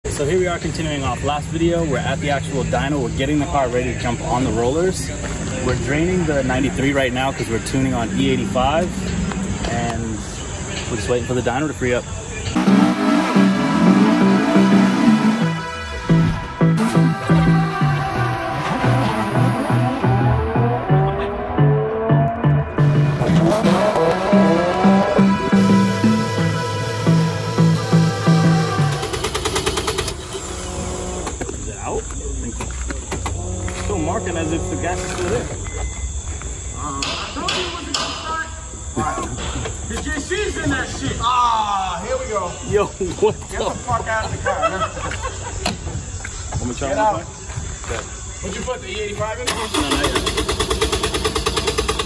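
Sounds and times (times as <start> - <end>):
indistinct voices: 0.0 - 44.2
electronic intro music: 12.6 - 30.4
engine rhythmic pulse: 12.6 - 36.2, 49.5 - 52.0.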